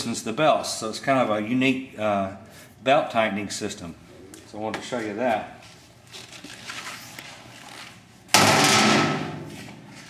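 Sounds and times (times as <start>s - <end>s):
steel door banging shut: 8.4s - 9.6s.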